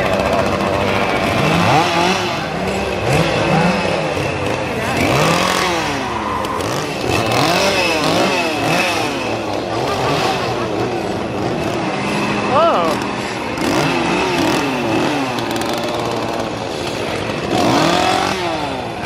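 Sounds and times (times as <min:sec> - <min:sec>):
chainsaws revving: 0:00.0 - 0:19.0.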